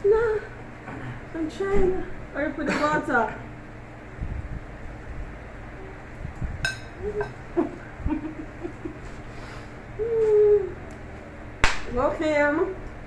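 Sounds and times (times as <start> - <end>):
person humming: 7.0 - 7.4, 10.0 - 10.8.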